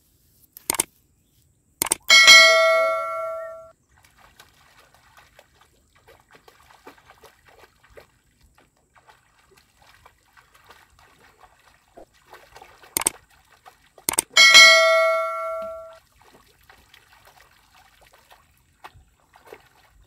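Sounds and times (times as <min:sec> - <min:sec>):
mouse click: 0:00.6 - 0:00.9, 0:01.8 - 0:02.0
notification bell chime: 0:02.1 - 0:03.7, 0:14.4 - 0:16.0
faint water splashing: 0:02.4 - 0:20.0.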